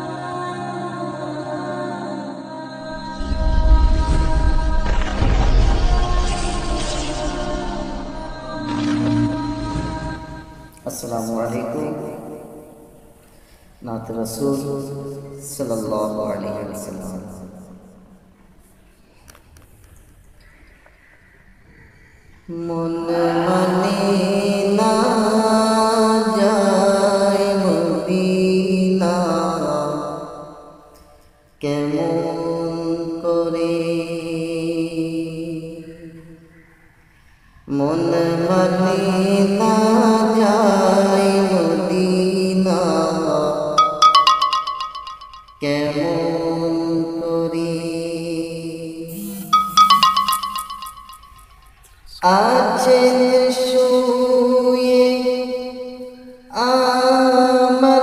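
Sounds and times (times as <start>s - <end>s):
man singing devotional song: 13.8s - 17.5s, 22.5s - 30.4s, 31.6s - 36.2s, 37.7s - 44.2s, 45.6s - 50.7s, 52.1s - 58.0s.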